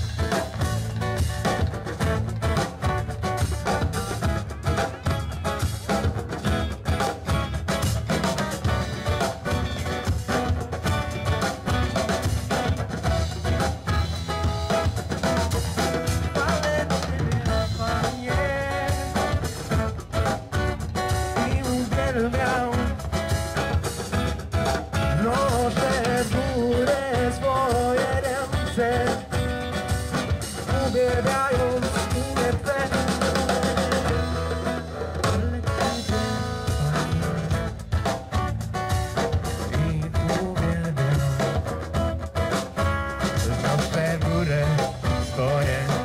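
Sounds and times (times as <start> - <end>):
acoustic guitar: 0.0 - 46.0
drum kit: 0.0 - 46.0
electric guitars: 0.0 - 46.0
person singing: 16.3 - 19.6, 21.4 - 23.1, 25.0 - 29.4, 30.6 - 33.6, 39.6 - 41.7, 43.4 - 46.0.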